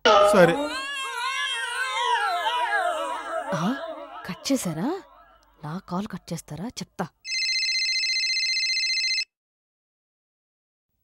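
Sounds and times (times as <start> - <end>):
telephone ringing: 7.3 - 9.3.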